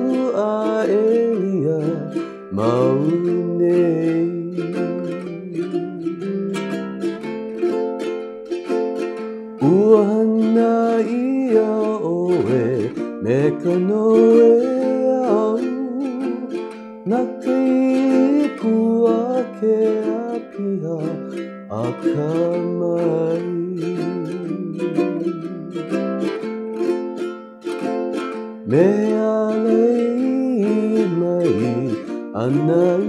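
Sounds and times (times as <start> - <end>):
man singing: 0.0 - 7.2, 9.6 - 26.5, 27.8 - 33.0
ukulele strumming chords: 0.0 - 33.0.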